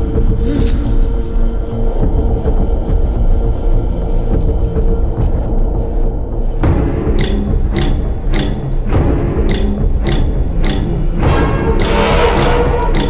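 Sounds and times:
metallic jingling: 0:00.0 - 0:02.4, 0:04.0 - 0:13.0
dramatic film score: 0:00.0 - 0:13.0.

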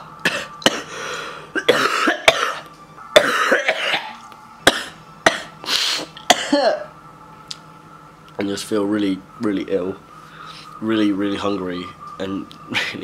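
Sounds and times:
man coughing: 0:00.2 - 0:02.6, 0:03.2 - 0:05.6, 0:06.3 - 0:06.9.

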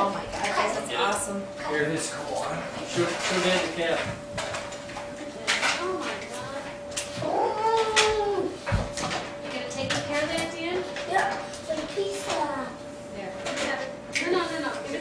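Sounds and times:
faint hum: 0:00.0 - 0:15.0.

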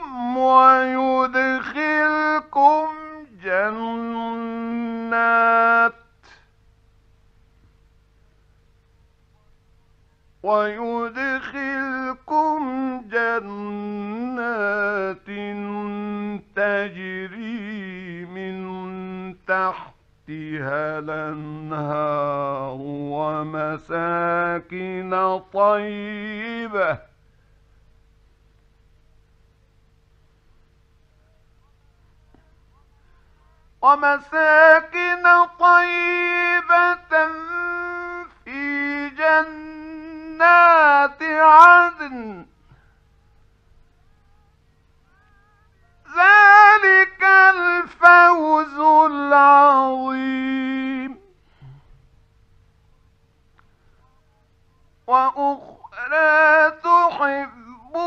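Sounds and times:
man reciting melodically: 0:00.0 - 0:06.2, 0:10.4 - 0:27.1, 0:33.6 - 0:42.6, 0:44.5 - 0:51.3, 0:55.0 - 0:58.0
man breathing: 0:51.2 - 0:52.2.

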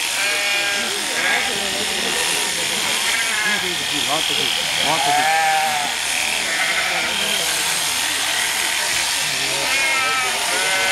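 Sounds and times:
electric clippers buzzing: 0:00.0 - 0:10.9
sheep bleating: 0:00.1 - 0:01.8, 0:02.8 - 0:03.8, 0:04.4 - 0:10.9.

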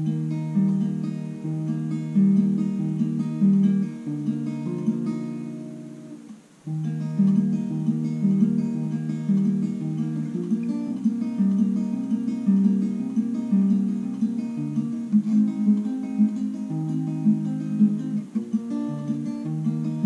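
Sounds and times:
fingerpicked acoustic guitar: 0:00.0 - 0:20.0.

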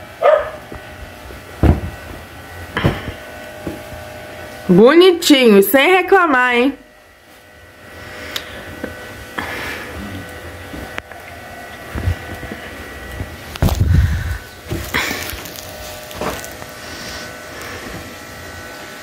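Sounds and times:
faint electrical whine: 0:00.0 - 0:19.0
bedding rustling and flapping: 0:00.6 - 0:04.0, 0:11.8 - 0:16.7.

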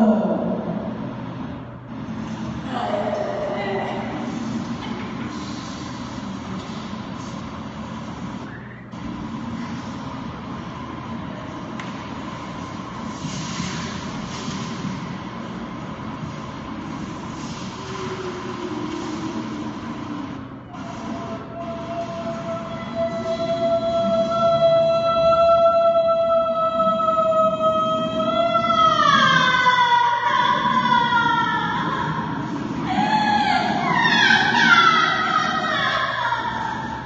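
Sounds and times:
electronic rumble and hiss: 0:00.0 - 0:37.0.

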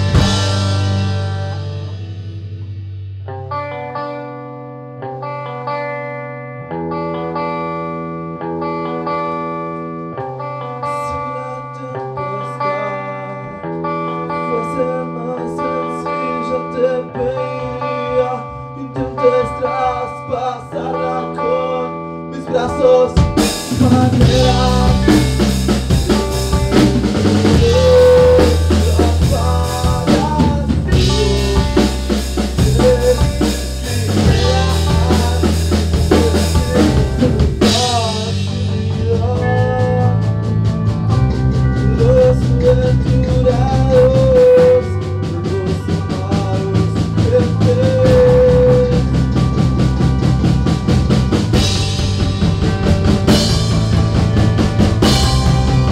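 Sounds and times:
guitar chords: 0:00.0 - 0:55.9
rock band playing loudly: 0:00.0 - 0:55.9.

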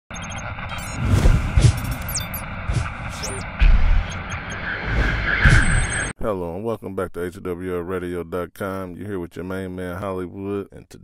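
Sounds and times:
short electronic beeps: 0:00.1 - 0:06.1
whooshes: 0:00.7 - 0:06.1
deep bass hits: 0:02.7 - 0:04.2.

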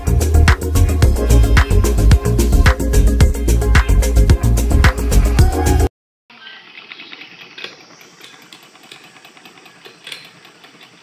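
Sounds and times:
loud background music: 0:00.0 - 0:05.9
hand sewing machine clicking: 0:06.7 - 0:11.0.

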